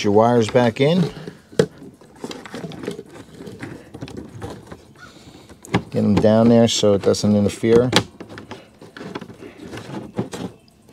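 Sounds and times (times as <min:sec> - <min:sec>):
wires rustling: 0:00.0 - 0:10.9.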